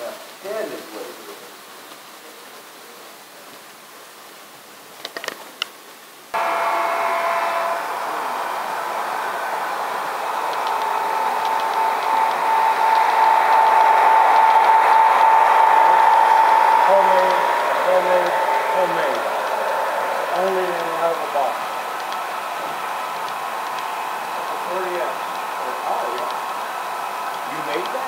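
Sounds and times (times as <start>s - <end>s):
model train running on track: 6.4s - 28.0s.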